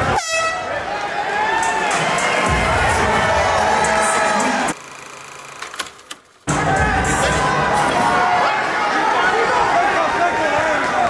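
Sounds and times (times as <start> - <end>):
air horn blast: 0.0 - 0.8
crowd chatter: 0.0 - 4.8, 6.5 - 11.0.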